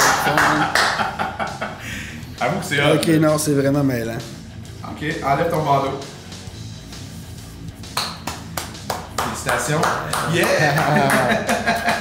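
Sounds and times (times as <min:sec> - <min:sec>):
hand claps: 0:00.0 - 0:01.2, 0:07.8 - 0:12.0
background music: 0:00.0 - 0:12.0.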